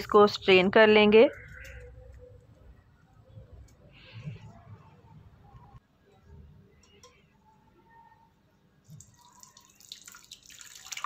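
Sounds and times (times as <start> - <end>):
liquid trickling and splashing: 8.9 - 11.0.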